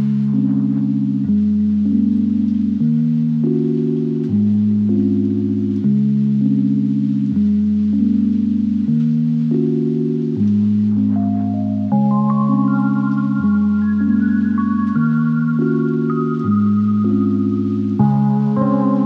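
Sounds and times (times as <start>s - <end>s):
bass line: 0.0s - 19.0s
slow synth chords: 0.0s - 19.0s.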